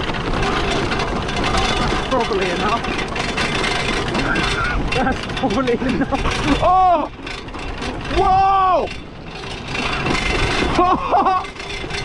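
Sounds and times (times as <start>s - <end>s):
tyres rolling over gravel: 0.0s - 12.0s
rider laughing: 4.0s - 7.2s, 9.8s - 12.0s.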